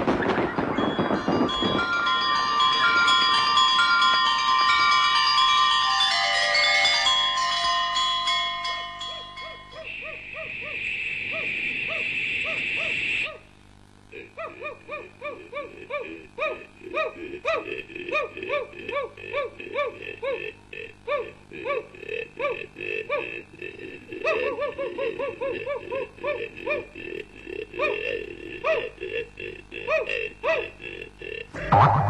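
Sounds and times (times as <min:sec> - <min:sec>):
springy boing tones: 0:31.6 - 0:32.0.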